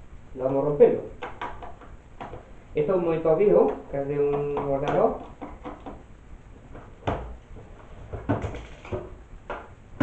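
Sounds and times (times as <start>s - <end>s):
plastic knocks and clatters: 1.2s - 2.5s, 3.6s - 10.0s.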